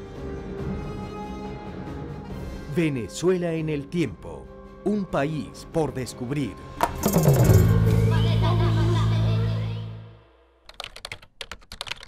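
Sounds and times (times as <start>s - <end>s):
music: 0.0s - 10.7s
keyboard typing clicks: 10.7s - 12.0s.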